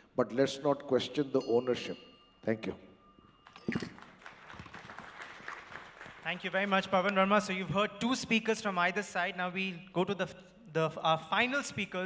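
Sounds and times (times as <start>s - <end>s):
audience applause: 3.5s - 6.8s.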